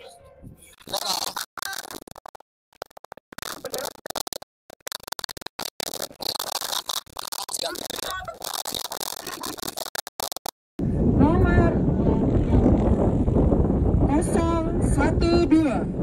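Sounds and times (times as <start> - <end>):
low wind rumble: 10.8 - 16.0
wind buffeting microphone: 10.8 - 16.0.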